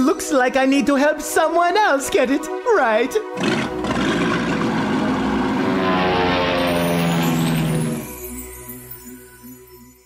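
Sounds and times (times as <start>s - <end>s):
propeller airplane engine: 3.6s - 8.2s.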